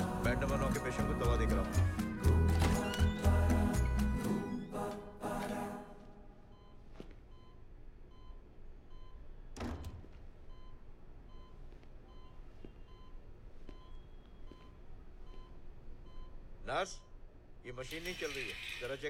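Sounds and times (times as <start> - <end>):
patient monitor beeping: 6.4 - 18.4.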